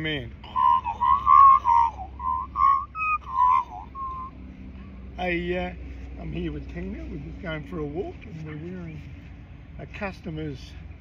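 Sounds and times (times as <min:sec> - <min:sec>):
person whistling a tune: 0:00.4 - 0:04.3.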